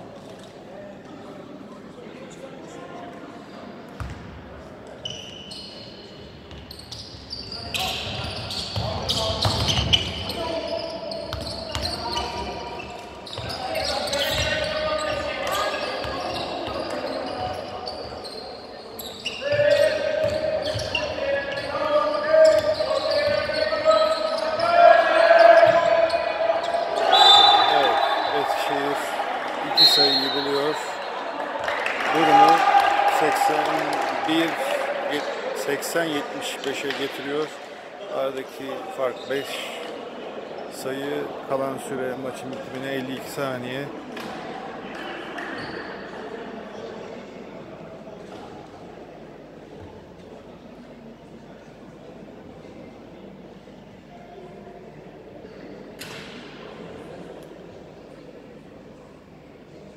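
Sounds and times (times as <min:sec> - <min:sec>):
basketball bouncing on court: 0:04.0 - 0:04.2
referee whistle blasts: 0:27.0 - 0:28.5, 0:29.7 - 0:30.9.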